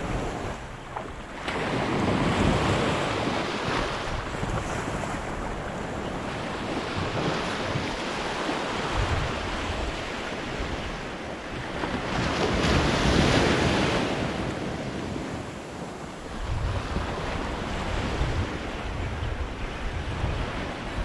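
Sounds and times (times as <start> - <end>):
small waves washing up sand: 0.0 - 21.0
wind buffeting microphone: 0.0 - 21.0.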